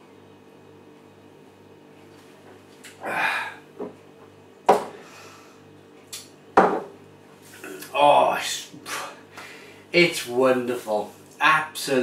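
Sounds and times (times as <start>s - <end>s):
faint steady hum: 0.0s - 12.0s
hard objects knocking on worktop: 4.7s - 5.0s, 6.6s - 7.0s.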